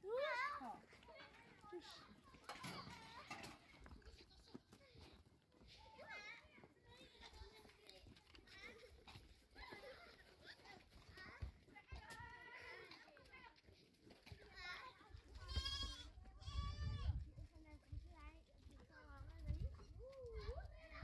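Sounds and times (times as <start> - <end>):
goats and lambs bleating: 15.3 - 17.2.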